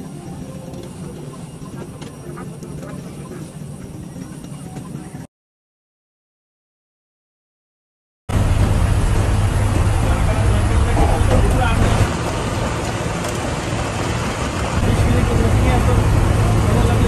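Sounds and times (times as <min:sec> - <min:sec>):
engine and tyre rumble: 0:08.3 - 0:17.0
road and wind noise hiss: 0:08.4 - 0:17.0.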